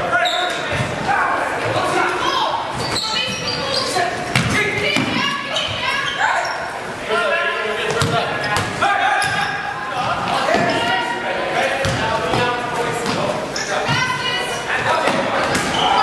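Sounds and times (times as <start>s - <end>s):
players and spectators calling out: 0.0s - 16.0s
basketball bouncing on wooden court: 4.3s - 5.8s, 7.9s - 9.5s, 11.8s - 13.2s.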